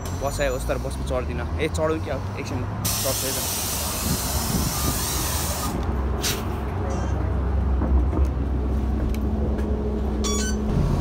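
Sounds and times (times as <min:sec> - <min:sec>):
bus engine rumble: 0:00.0 - 0:11.0
wind hissing on microphone: 0:02.9 - 0:05.8.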